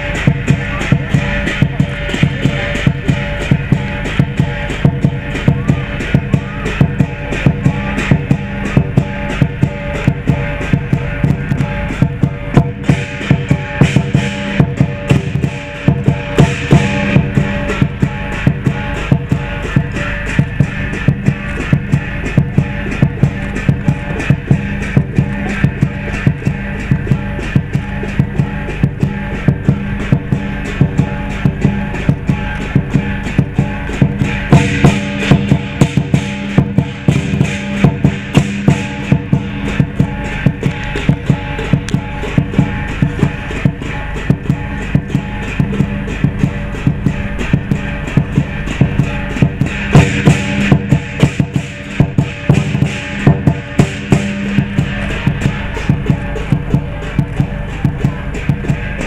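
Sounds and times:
cymbals clashing: 0.0s - 59.0s
large drum beaten fast: 0.0s - 59.0s.

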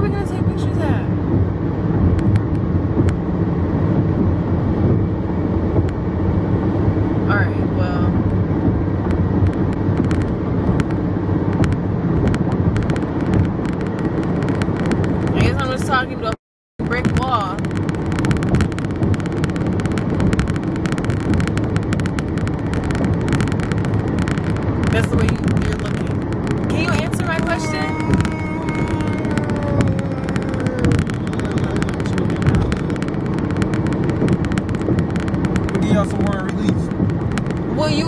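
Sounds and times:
road noise inside a car: 0.0s - 38.0s
voices: 24.8s - 34.0s, 35.6s - 36.9s
man shouting: 26.8s - 32.7s.

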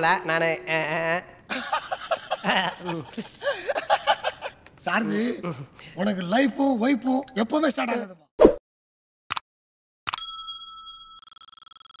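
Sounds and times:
bright bell ding: 10.2s - 11.3s.

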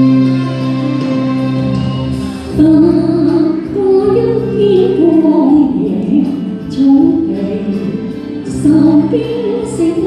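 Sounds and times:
instrumental accompaniment: 0.0s - 10.0s
woman singing into microphone: 2.5s - 10.0s.

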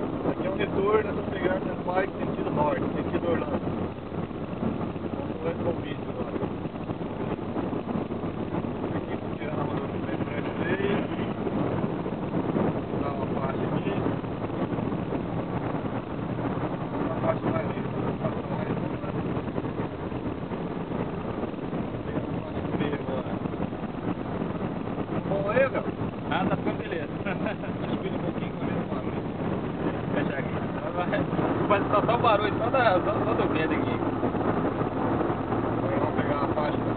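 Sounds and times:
road and wind noise in car: 0.0s - 36.9s.

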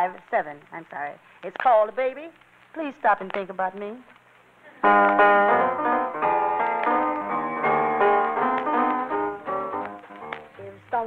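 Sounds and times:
jazz blues piano: 4.8s - 11.0s.

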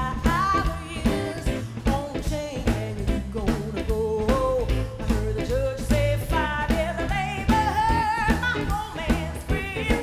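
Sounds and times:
drums steady beat: 0.0s - 10.0s
electric bass: 0.0s - 10.0s
woman singing: 0.0s - 10.0s.

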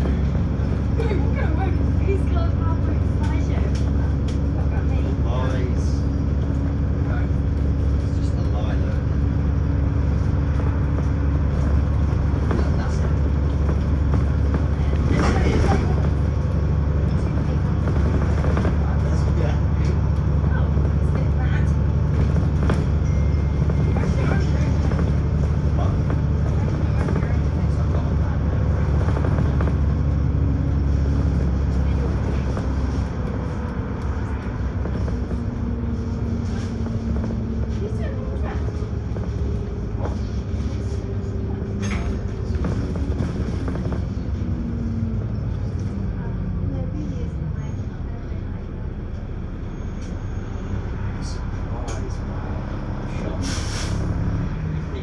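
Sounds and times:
bus engine drone: 0.0s - 55.0s
road and body noise: 0.0s - 55.0s.

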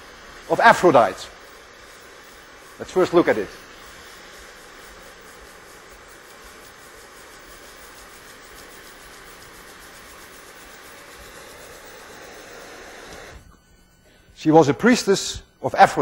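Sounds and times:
propane torch flame: 0.0s - 14.0s
steam engine hissing: 0.0s - 16.0s.

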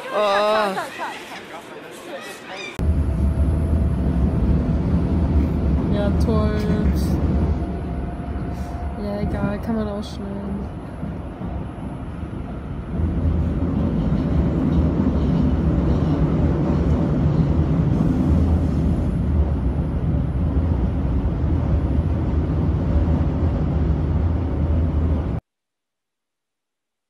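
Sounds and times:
train rumble from inside carriage: 2.8s - 25.4s.

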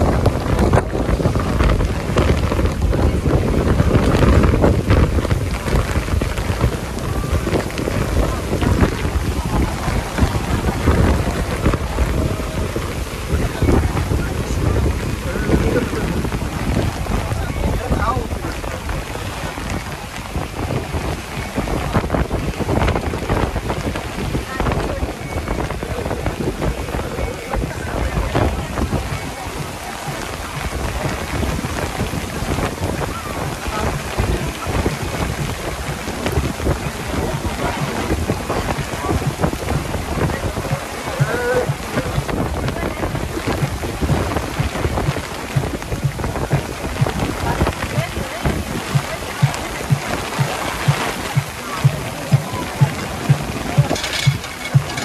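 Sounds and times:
heavy rain on boat deck: 0.0s - 55.0s
wind buffeting microphone: 0.0s - 55.0s.

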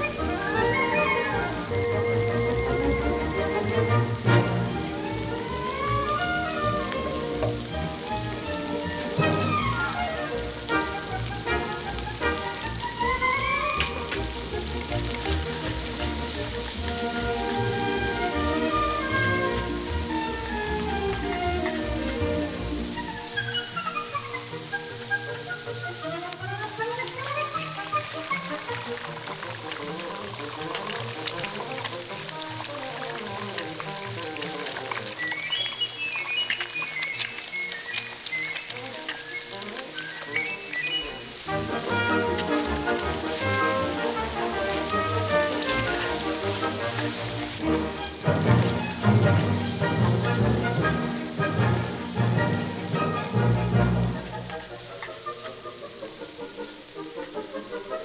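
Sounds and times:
instrumental background music: 0.0s - 58.0s
noodles sizzling in a wok: 0.0s - 58.0s.

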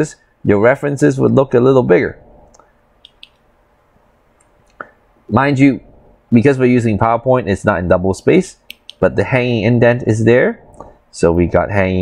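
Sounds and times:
faint computer clicks: 2.5s - 3.5s.

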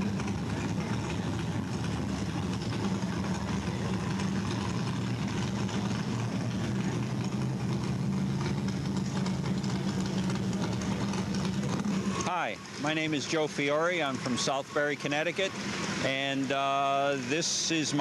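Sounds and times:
low mechanical drone: 0.0s - 18.0s.

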